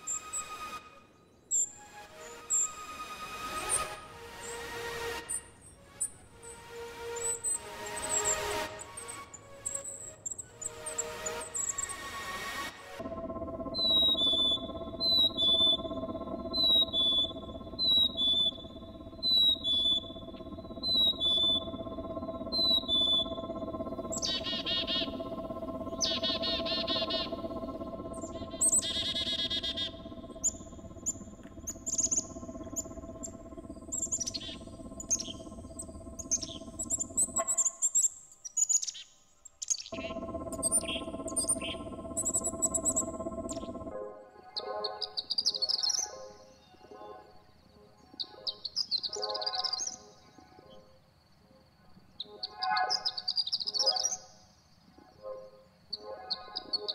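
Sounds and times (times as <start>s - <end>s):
steady ambient drone: 0.0s - 38.1s, 39.9s - 44.4s
two-note whistled bird song: 13.0s - 37.7s.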